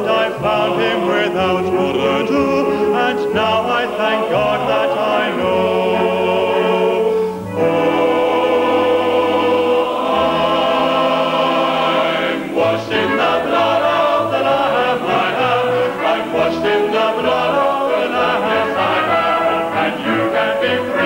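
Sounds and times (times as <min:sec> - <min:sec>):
choir singing: 0:00.0 - 0:21.0
man singing a hymn: 0:00.0 - 0:21.0.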